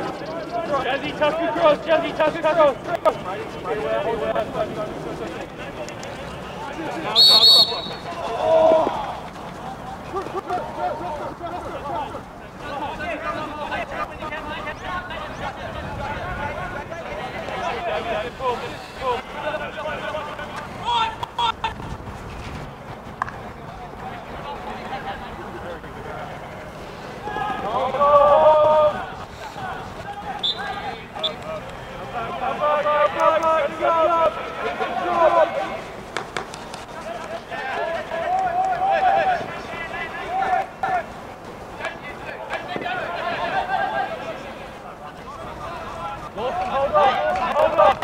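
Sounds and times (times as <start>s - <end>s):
players shouting: 0.0s - 21.8s, 23.9s - 48.0s
stick clacking on ball: 36.1s - 36.9s.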